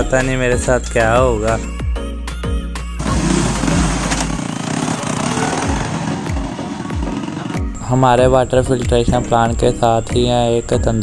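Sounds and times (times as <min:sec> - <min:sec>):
small motorcycle engine running: 0:03.0 - 0:07.7.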